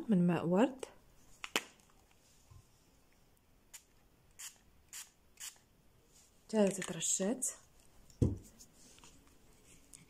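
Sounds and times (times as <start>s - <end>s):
spray bottle spraying: 3.7s - 5.6s.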